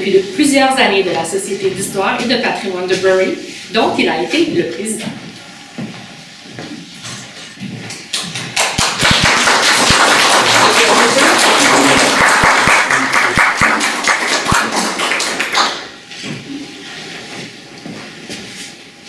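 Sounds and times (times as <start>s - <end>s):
audience applauding: 8.1s - 16.0s.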